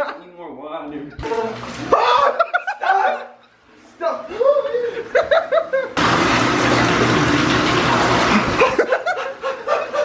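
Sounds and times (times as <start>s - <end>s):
water running from a tap: 1.2s - 2.6s, 6.0s - 9.2s
person laughing: 2.0s - 3.0s, 4.3s - 6.0s, 8.4s - 10.0s.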